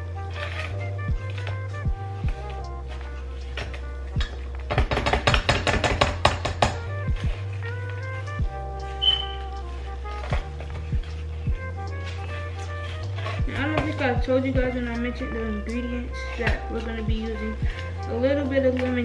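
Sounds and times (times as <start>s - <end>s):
background music with bass: 0.0s - 19.0s
spatula knocking and scraping a bowl: 0.4s - 9.5s, 10.1s - 19.0s.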